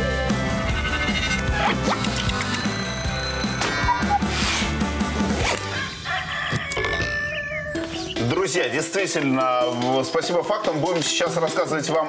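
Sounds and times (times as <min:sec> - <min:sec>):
jingle music with a beat: 0:00.0 - 0:05.2
alarm clock bell ringing: 0:02.6 - 0:03.6.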